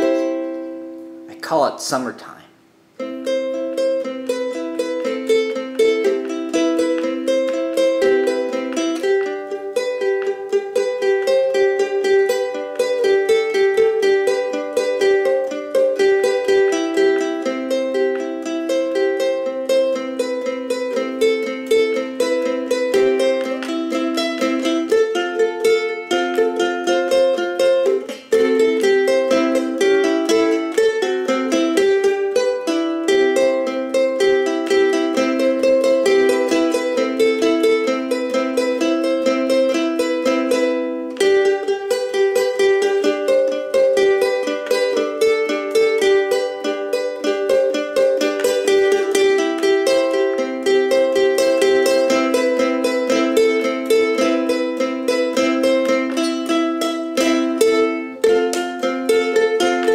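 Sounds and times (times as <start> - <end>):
solo ukulele playing: 0.0 - 1.6, 2.6 - 59.9.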